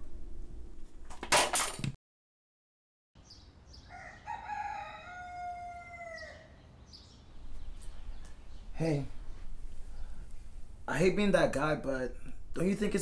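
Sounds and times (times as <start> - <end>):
faint outdoor background: 3.2 - 13.0
rooster crowing: 3.8 - 6.6.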